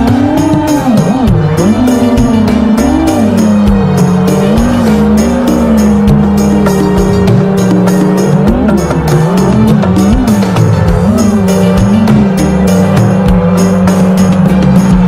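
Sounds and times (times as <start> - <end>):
music with steady drum beat: 0.0 - 15.0
whine rising and dipping in pitch: 0.0 - 15.0.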